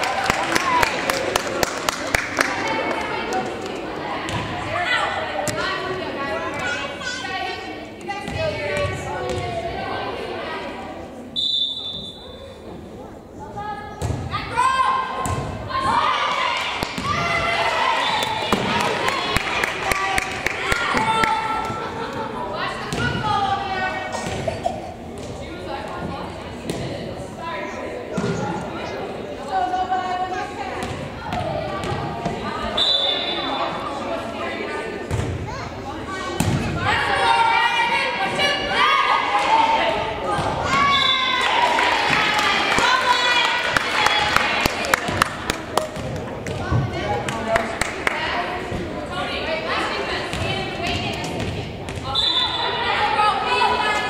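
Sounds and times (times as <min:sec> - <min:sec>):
girls shouting and calling: 0:14.3 - 0:24.0, 0:36.8 - 0:44.6
volleyball struck with thuds: 0:36.4 - 0:36.8.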